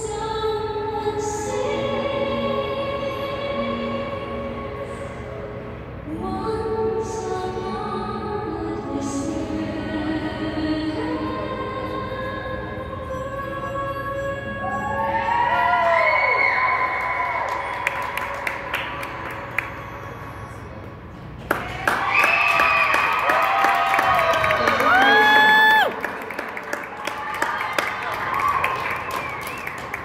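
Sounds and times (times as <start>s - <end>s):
choir singing: 1.0s - 5.3s
spectators clapping and cheering: 15.3s - 20.3s, 21.4s - 30.0s.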